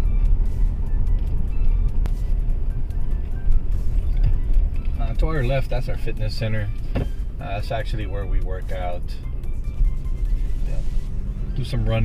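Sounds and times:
car engine and tyres rumbling: 0.0s - 12.0s
faint music: 0.0s - 12.0s.

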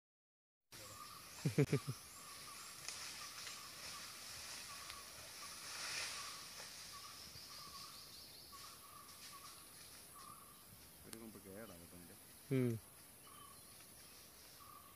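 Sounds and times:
insects hissing: 0.8s - 14.9s.

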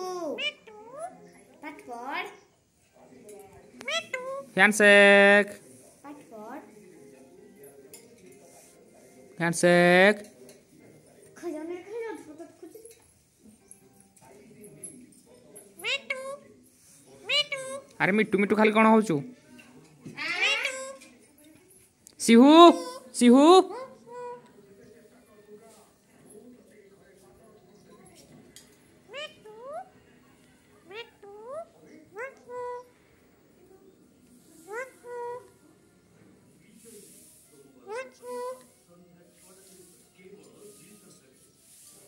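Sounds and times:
parakeet high-pitched call: 3.8s - 4.5s, 15.8s - 16.4s, 17.2s - 17.9s, 20.2s - 21.0s, 29.1s - 29.8s.

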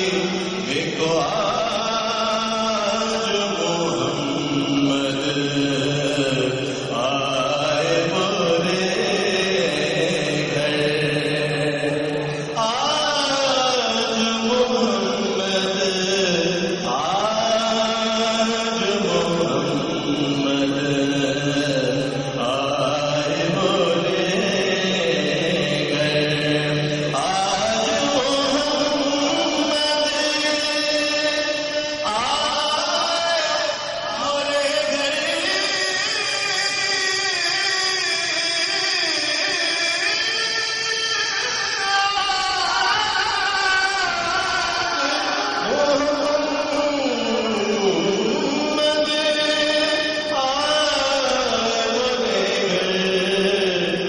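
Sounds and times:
man reciting melodically: 0.0s - 54.0s.

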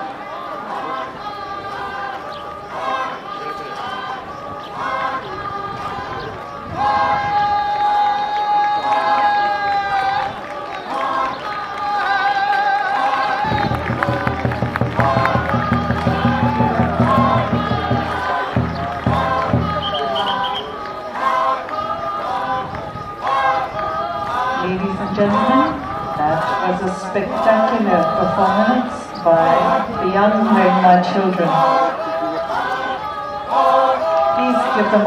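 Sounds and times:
group singing in unison: 0.0s - 35.0s
low rhythmic chant: 0.0s - 35.0s.

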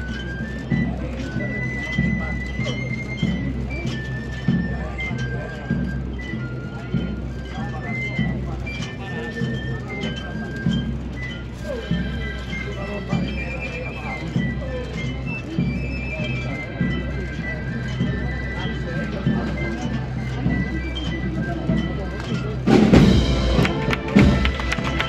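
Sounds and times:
band playing a march: 0.0s - 25.0s
crowd voices: 0.0s - 25.0s
low drums beating: 0.0s - 25.0s.

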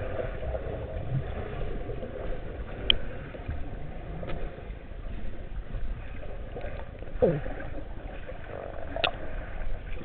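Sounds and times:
muffled underwater noise: 6.0s - 10.0s.

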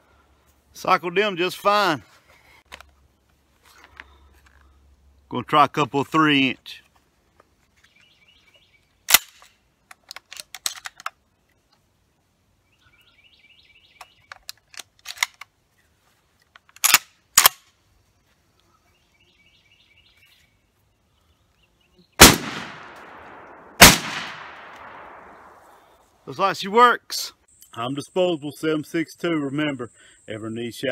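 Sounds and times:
shells clicking into shotgun: 9.1s - 11.2s, 14.3s - 15.5s, 16.5s - 17.6s
shotgun shots with echo: 22.2s - 25.6s.

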